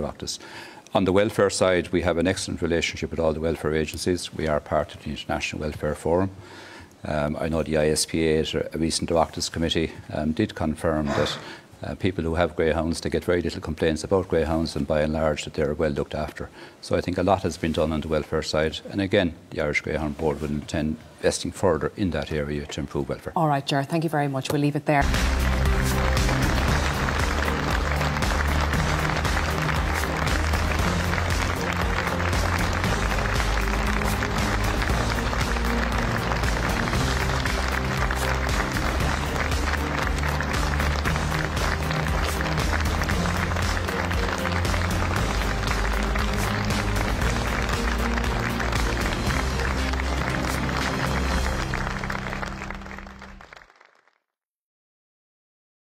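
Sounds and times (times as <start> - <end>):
closing theme music: 25.0 - 53.8
audience applause: 25.0 - 54.2.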